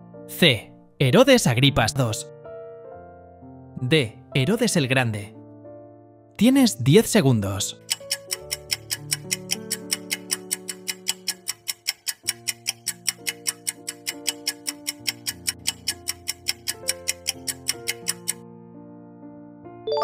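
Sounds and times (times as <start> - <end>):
clock ticking fast: 7.8 - 18.4.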